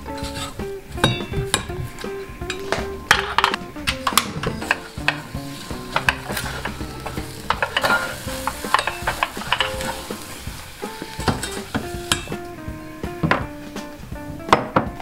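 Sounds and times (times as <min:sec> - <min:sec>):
light sizzle: 0:00.0 - 0:14.6.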